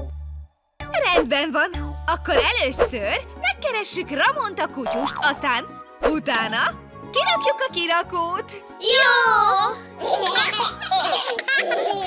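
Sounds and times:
light children's music: 0.0 - 12.0.

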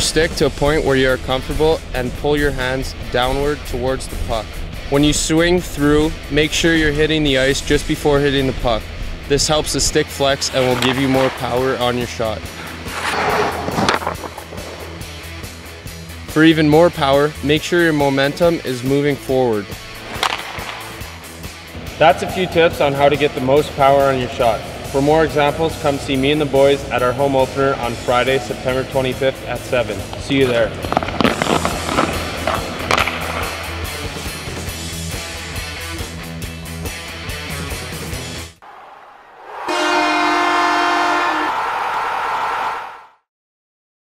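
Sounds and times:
background music: 0.0 - 38.6
hockey stick cracking on ice: 10.4 - 15.2, 20.0 - 21.3, 30.0 - 34.5
train horn chord: 39.7 - 41.5.

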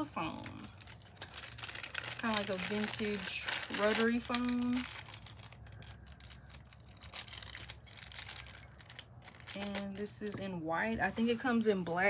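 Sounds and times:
plastic wrapper crinkling: 0.1 - 10.4.

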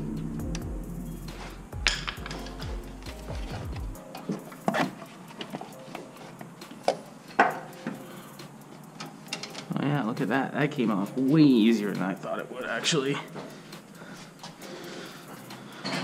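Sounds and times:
background music with bass line: 0.0 - 5.0.

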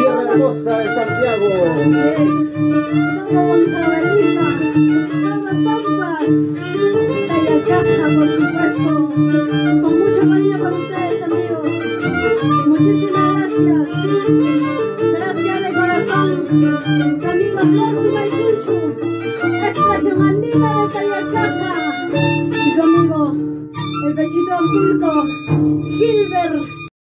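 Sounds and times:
harp accompaniment: 0.0 - 26.9
violin playing lively melody: 0.0 - 27.0.

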